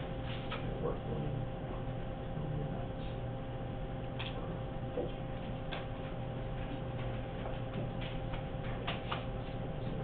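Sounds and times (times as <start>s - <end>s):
electrical hum: 0.0s - 10.0s
faint clicks and taps: 5.0s - 10.0s.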